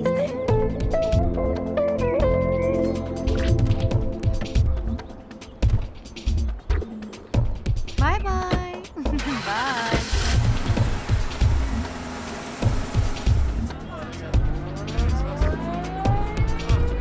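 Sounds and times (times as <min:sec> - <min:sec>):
background music with low beats: 0:00.0 - 0:09.3, 0:10.0 - 0:17.0
car engine driving up: 0:09.1 - 0:17.0.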